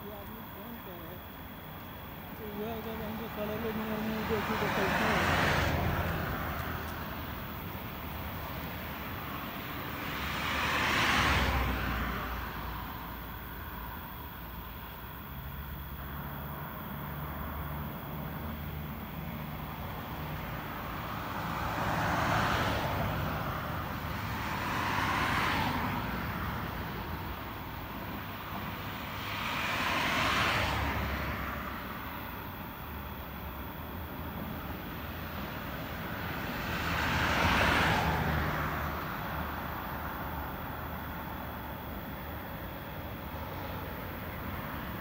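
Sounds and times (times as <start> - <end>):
vehicles passing by: 0.0 - 45.0.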